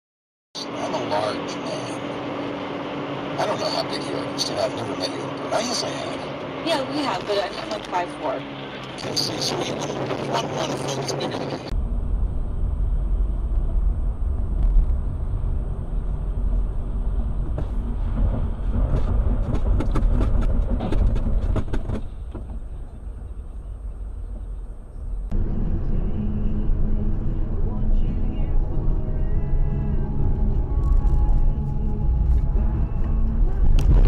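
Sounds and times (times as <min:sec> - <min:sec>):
car road and engine rumble: 0:00.6 - 0:34.0.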